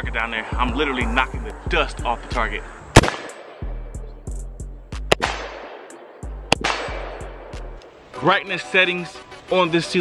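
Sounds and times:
beat music with deep bass: 0.0s - 3.0s, 3.6s - 5.6s, 6.2s - 7.8s
rifle shots with echo: 2.9s - 3.7s, 5.1s - 7.6s.

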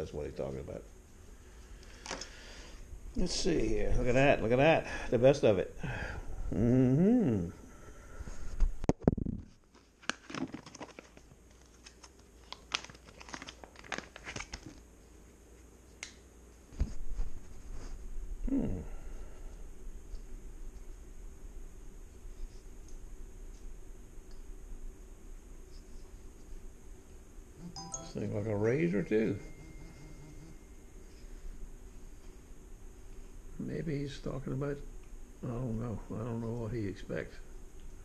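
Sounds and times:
low room hum: 0.0s - 38.0s
low hum-like voice: 3.2s - 7.8s, 18.4s - 19.6s, 33.6s - 37.5s
crinkling handling noise: 8.4s - 16.0s.

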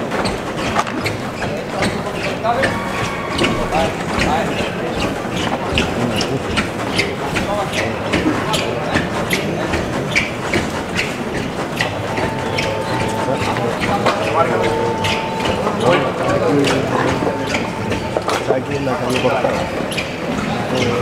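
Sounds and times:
crowd talking: 0.0s - 21.0s.

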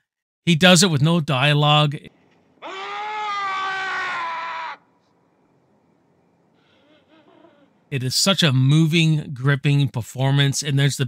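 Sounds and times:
man screaming: 2.6s - 4.9s.

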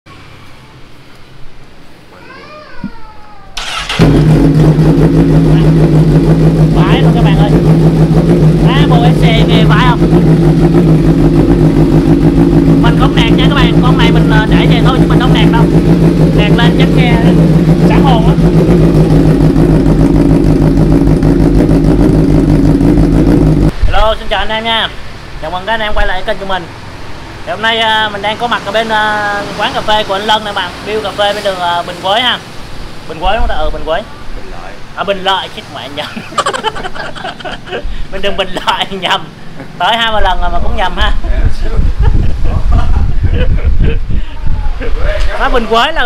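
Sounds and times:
motorcycle engine starting and idling: 3.6s - 23.8s.

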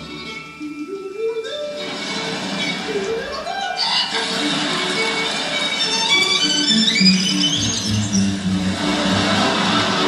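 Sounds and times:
orchestral music with violins: 0.0s - 10.0s.

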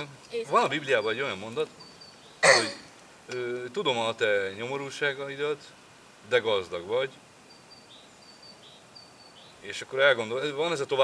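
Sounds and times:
faint outdoor ambience: 0.0s - 11.0s
high bird chirps: 0.8s - 2.5s, 7.4s - 9.6s.

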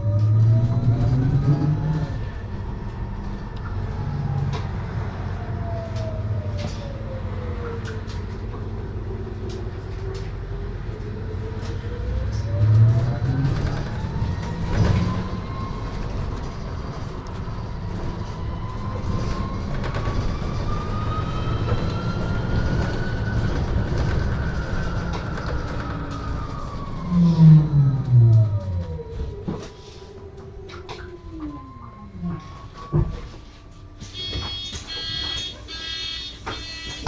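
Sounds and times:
low road rumble: 0.0s - 34.2s
electric bus drive whining: 0.0s - 37.0s.

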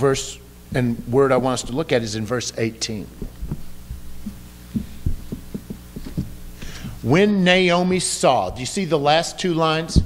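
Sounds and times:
low electrical hum: 0.0s - 10.0s
soft low thumps: 3.1s - 7.0s.

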